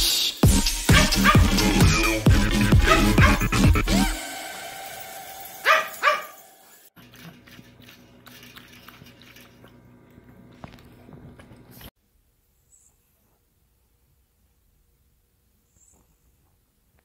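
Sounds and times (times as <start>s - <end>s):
dog barking sharply: 0.9s - 1.6s, 2.8s - 3.4s, 5.6s - 6.4s
dog lapping water from metal bowl: 7.0s - 9.9s.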